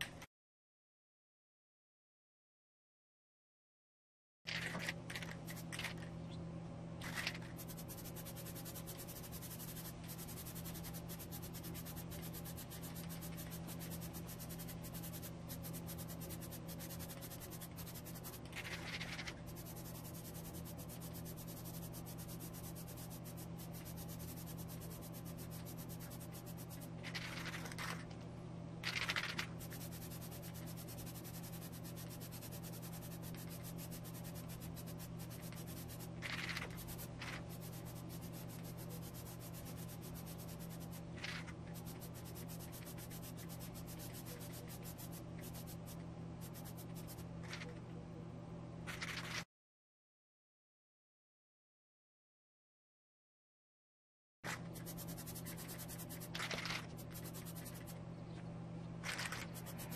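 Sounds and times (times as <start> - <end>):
steady low hum: 4.5 - 49.4, 54.5 - 59.9.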